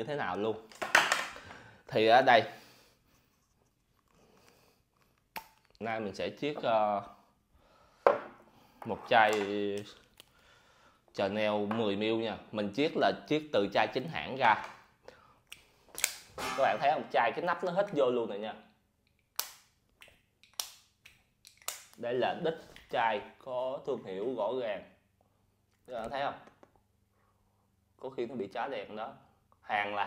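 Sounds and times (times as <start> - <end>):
glass bottle set down on table: 8.1 - 8.4.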